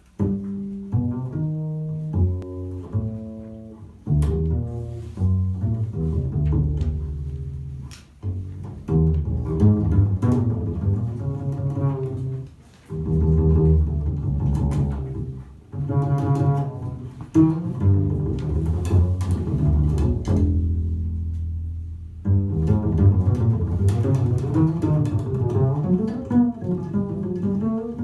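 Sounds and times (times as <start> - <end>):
double bass plucked: 0.0 - 28.0.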